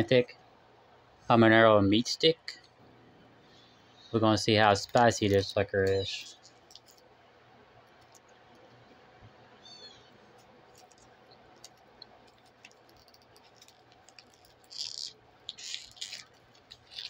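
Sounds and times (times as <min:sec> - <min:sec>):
man chewing: 0:10.4 - 0:17.0.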